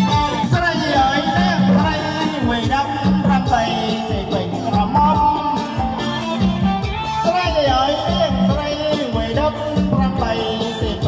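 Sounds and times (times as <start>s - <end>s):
live band dance music: 0.0s - 11.0s.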